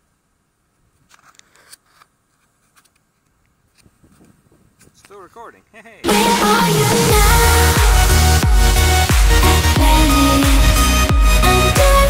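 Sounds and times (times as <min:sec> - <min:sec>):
fingers handling camera: 0:01.1 - 0:05.0.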